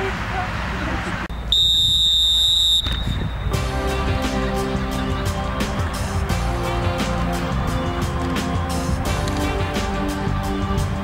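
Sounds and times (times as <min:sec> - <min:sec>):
referee's whistle blast: 0:01.3 - 0:03.5
music with a beat: 0:03.6 - 0:11.0.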